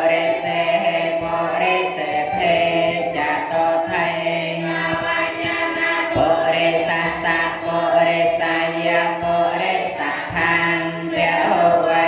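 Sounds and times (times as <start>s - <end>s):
group chanting in unison: 0.0s - 12.0s.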